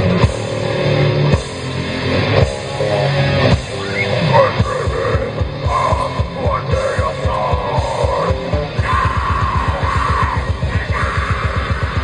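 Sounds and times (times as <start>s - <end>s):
fast bass drum beats: 0.0s - 12.0s
metal band playing live: 0.0s - 12.0s.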